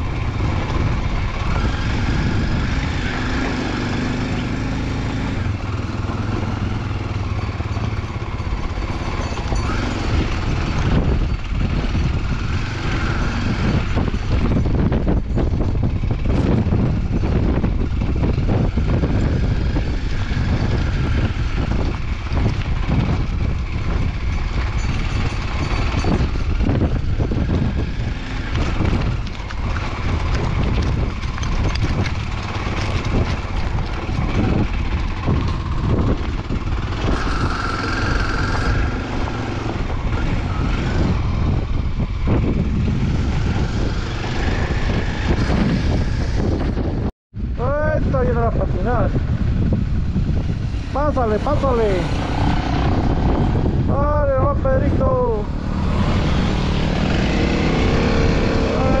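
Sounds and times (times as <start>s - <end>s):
motorcycle engine running: 0.0s - 59.0s
wind rumble on microphone: 0.0s - 59.0s
stones knocking and rattling: 28.4s - 36.4s.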